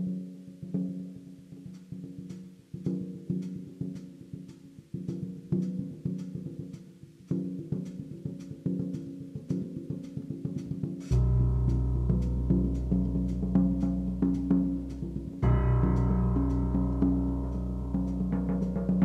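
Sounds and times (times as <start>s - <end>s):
light clicking percussion: 0.0s - 19.0s
resonant pitched drum strikes: 0.0s - 19.0s.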